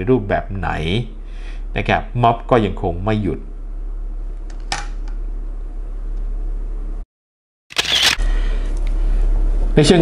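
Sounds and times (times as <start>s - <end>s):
low electrical hum: 0.0s - 7.0s, 7.7s - 10.0s
sharp click: 7.7s - 8.2s.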